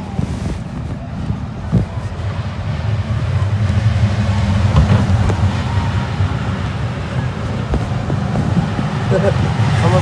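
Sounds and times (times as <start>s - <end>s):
ride machinery humming: 0.0s - 10.0s.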